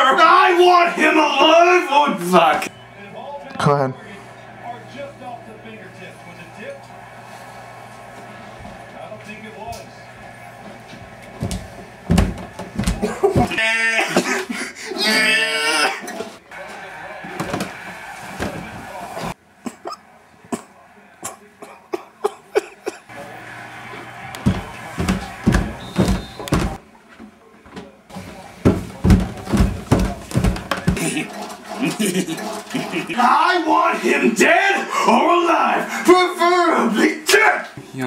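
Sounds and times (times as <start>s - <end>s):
footsteps coming down stairs: 10.6s - 13.6s, 24.1s - 33.5s
knocks: 11.4s - 13.6s, 24.4s - 26.8s, 28.6s - 31.8s.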